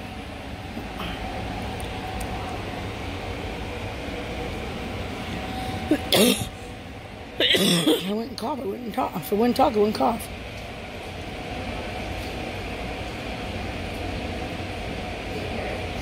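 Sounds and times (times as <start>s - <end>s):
low indoor hum: 0.0s - 16.0s
woman coughing: 5.9s - 6.5s, 7.4s - 8.3s.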